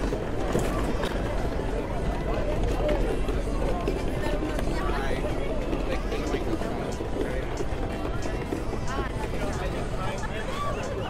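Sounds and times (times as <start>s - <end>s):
crowd chatting: 0.0s - 11.0s.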